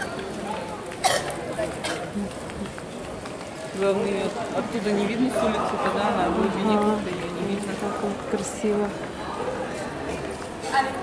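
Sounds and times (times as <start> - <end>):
faint voices of passers-by: 0.0 - 11.0.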